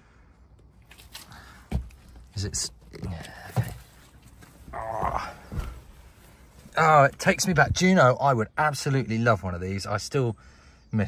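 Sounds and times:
rustling and shuffling: 0.8 - 7.9.

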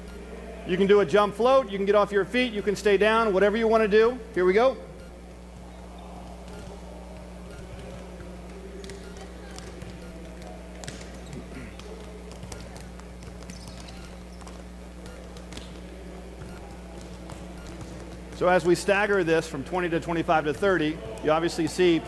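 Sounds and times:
low hall hum: 0.0 - 22.0
distant chatter: 4.9 - 22.0.

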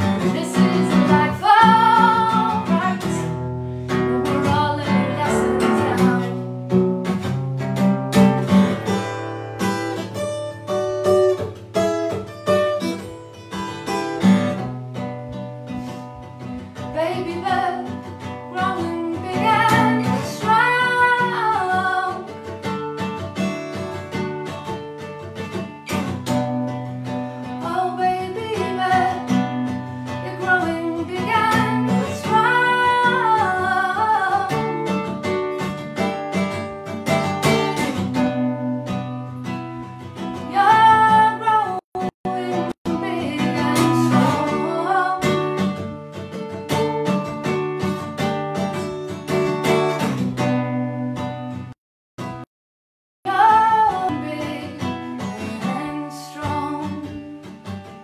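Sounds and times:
woman singing: 0.0 - 3.4, 4.0 - 6.4, 16.8 - 22.5, 27.5 - 35.0, 40.4 - 45.6, 53.3 - 57.4
strummed acoustic guitar: 0.0 - 52.5, 53.3 - 58.0.

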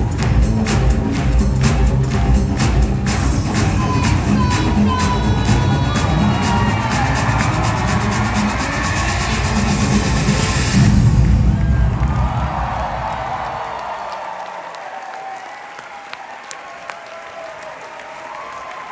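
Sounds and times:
music with heavy bass beat: 0.0 - 11.5
audience applauding and cheering: 0.0 - 18.9.

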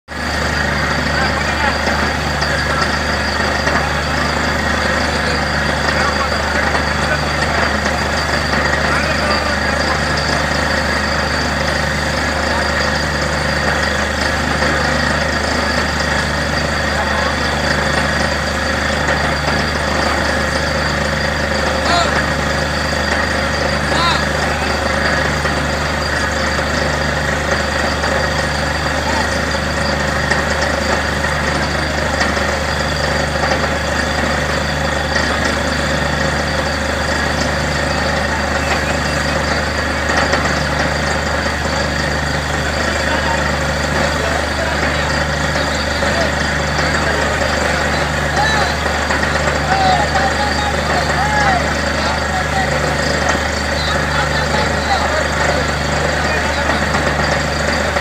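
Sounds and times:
drilling rig engine hum: 0.1 - 58.0.

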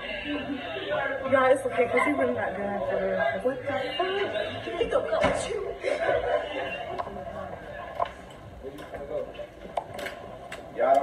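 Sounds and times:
people talking: 0.0 - 9.5
people laughing: 4.1 - 7.2.

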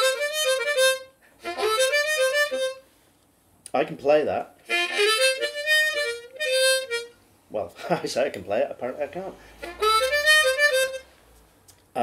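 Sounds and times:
harmonica lick: 0.0 - 2.9, 4.6 - 7.2, 9.5 - 11.1.

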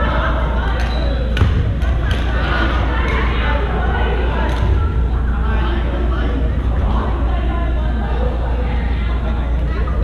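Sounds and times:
voices echoing in a hall: 0.0 - 10.0.

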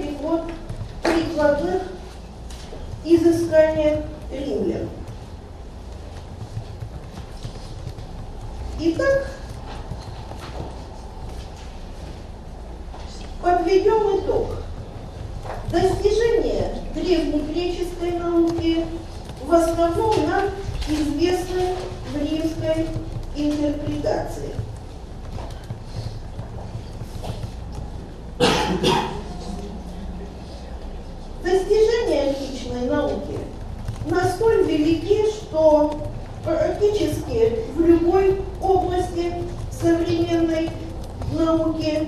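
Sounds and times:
computer keyboard keys clicking: 2.4 - 12.0, 17.0 - 28.3, 32.9 - 42.0.

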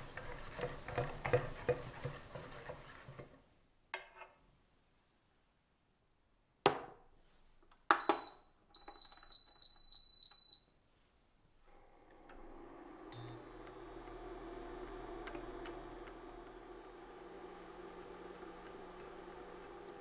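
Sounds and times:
whisk stirring in a pan: 0.0 - 3.3
cooktop humming: 11.8 - 20.0.

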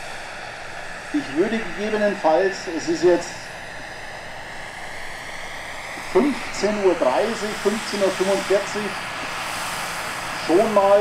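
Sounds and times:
helicopter rotor noise: 0.0 - 11.0
helicopter turbine whine: 0.0 - 11.0.

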